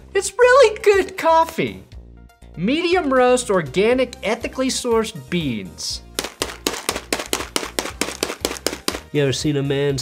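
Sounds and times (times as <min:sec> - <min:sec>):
hands slapping bag of coffee beans: 0:06.0 - 0:09.2.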